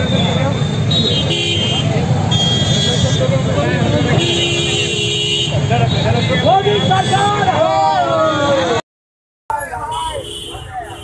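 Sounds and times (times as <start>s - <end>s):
vehicle horns: 0.0s - 7.7s, 9.7s - 11.0s
crowd voices: 0.0s - 8.8s
street traffic: 0.0s - 8.8s, 9.5s - 11.0s.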